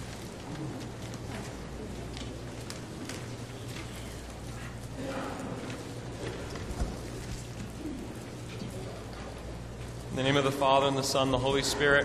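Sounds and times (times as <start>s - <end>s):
footsteps on marble floor: 0.0s - 10.1s
low electrical hum: 0.0s - 12.0s.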